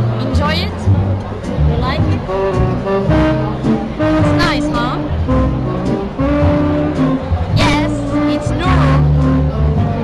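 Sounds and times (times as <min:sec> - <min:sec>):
horn holding steady notes: 0:00.0 - 0:10.0
jazz band playing: 0:00.0 - 0:10.0.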